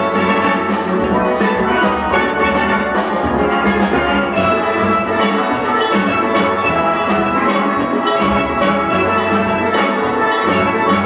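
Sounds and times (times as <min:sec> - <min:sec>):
drum kit: 0:00.0 - 0:11.0
steel pans playing: 0:00.0 - 0:11.0.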